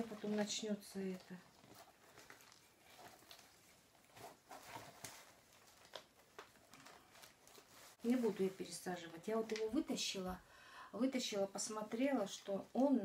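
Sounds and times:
plastic pot rustling: 0.0s - 10.2s.

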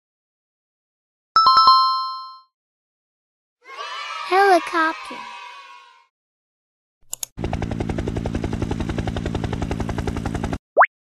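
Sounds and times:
helicopter engine drone: 7.4s - 10.6s
helicopter rotor blades chopping: 7.4s - 10.6s.

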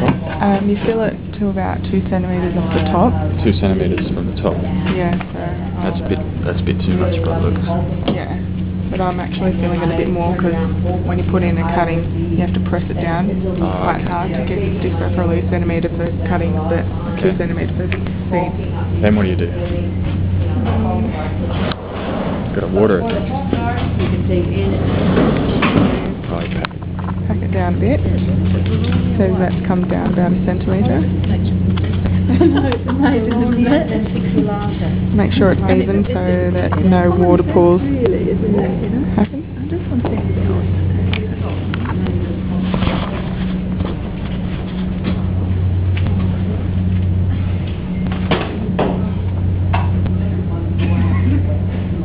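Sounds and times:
steady low hum: 0.0s - 52.0s
voices talking: 0.0s - 52.0s.

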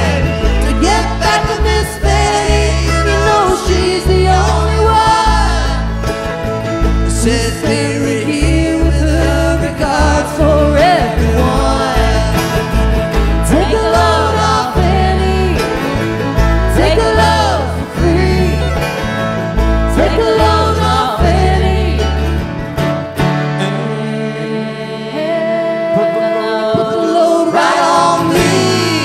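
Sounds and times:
upright bass pulsing: 0.0s - 26.2s, 27.7s - 29.0s
bluegrass band playing: 0.0s - 29.0s.

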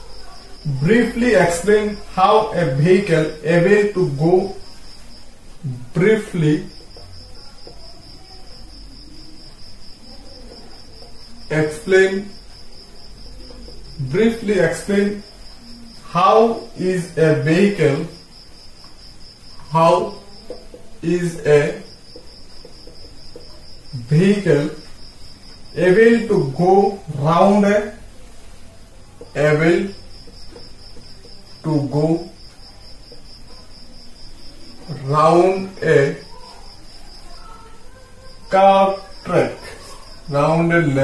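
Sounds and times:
high-pitched insect trill: 0.0s - 41.0s
person speaking: 0.6s - 4.6s, 5.6s - 6.8s, 11.4s - 12.4s, 13.5s - 15.3s, 16.0s - 18.2s, 19.6s - 20.4s, 21.0s - 21.9s, 23.9s - 24.9s, 25.7s - 28.1s, 29.2s - 30.1s, 31.6s - 32.4s, 34.7s - 36.4s, 38.3s - 41.0s
man's voice: 0.7s - 4.5s, 11.5s - 12.3s, 16.1s - 18.1s, 19.7s - 20.2s, 25.8s - 28.0s, 29.4s - 30.0s, 34.9s - 36.2s, 38.5s - 39.7s, 40.3s - 41.0s.

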